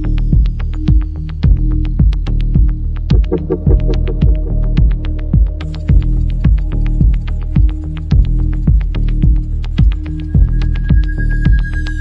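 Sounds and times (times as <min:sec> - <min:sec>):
electronic dance music: 0:03.1 - 0:04.6.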